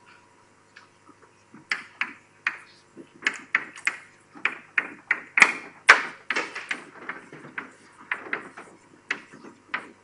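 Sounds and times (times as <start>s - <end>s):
chalk tapping on a blackboard: 6.7s - 10.0s.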